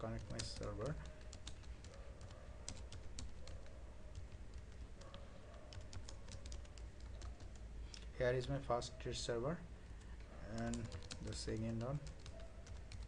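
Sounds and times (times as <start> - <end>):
computer keyboard typing: 0.0 - 8.0, 10.0 - 13.0.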